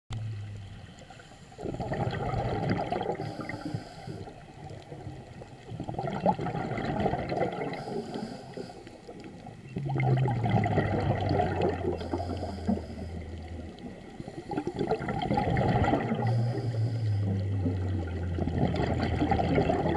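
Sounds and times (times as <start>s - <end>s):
underwater bubbles gurgling: 0.1s - 19.9s
regulator hiss: 3.2s - 4.5s, 7.7s - 9.1s, 12.0s - 13.5s, 16.2s - 17.4s.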